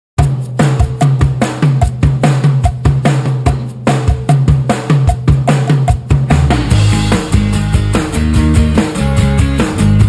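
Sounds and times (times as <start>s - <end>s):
rock drum kit beat: 0.2s - 10.0s
deep booming low notes: 6.5s - 8.9s.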